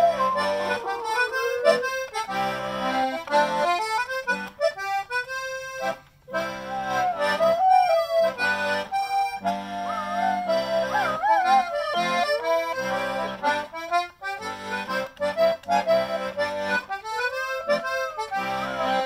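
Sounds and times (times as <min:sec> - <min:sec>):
dog howling: 0:00.0 - 0:02.3, 0:06.4 - 0:08.6, 0:09.8 - 0:13.2, 0:17.2 - 0:19.0
button accordion hornpipe tune: 0:00.0 - 0:19.0.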